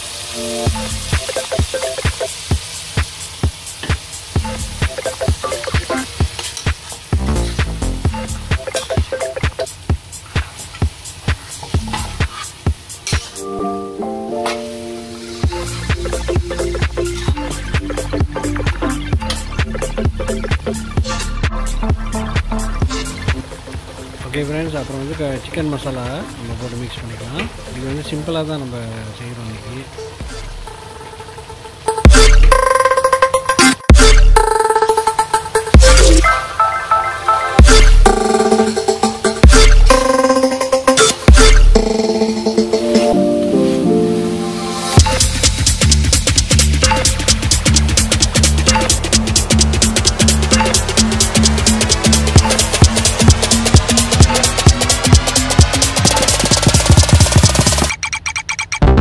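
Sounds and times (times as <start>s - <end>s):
curry sizzling in oil: 0.0s - 13.4s, 14.3s - 31.8s
background music with steady beat: 0.0s - 28.4s, 29.8s - 59.0s.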